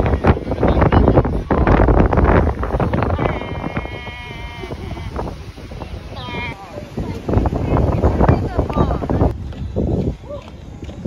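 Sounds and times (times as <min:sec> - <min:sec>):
wind buffeting microphone: 0:00.0 - 0:11.0
drawn-out high-pitched call: 0:03.2 - 0:05.2.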